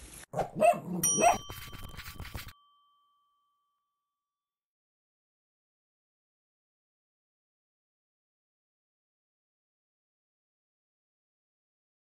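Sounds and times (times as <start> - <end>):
bright bell-like ding: 1.0 - 4.2.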